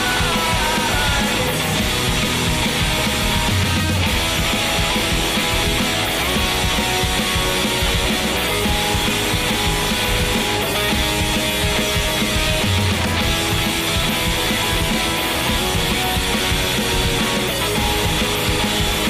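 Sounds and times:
rock song with electric guitar: 0:00.0 - 0:19.0.

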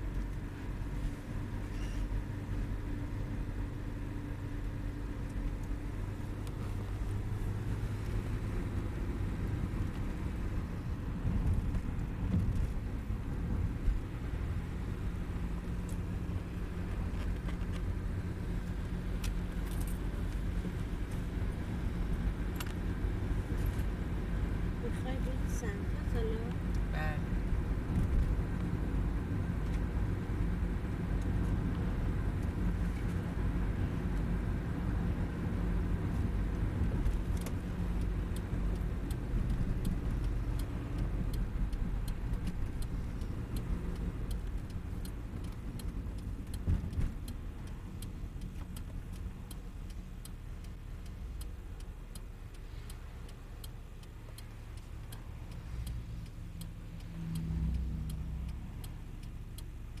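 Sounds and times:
car engine and tyre rumble: 0:00.0 - 1:00.0
regular ticking: 0:04.3 - 0:32.8, 0:33.4 - 1:00.0.

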